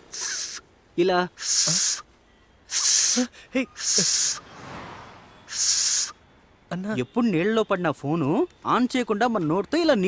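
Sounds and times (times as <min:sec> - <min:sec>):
hissing puffs of breath: 0:00.0 - 0:00.6, 0:01.4 - 0:02.0, 0:02.7 - 0:04.5, 0:05.5 - 0:06.2.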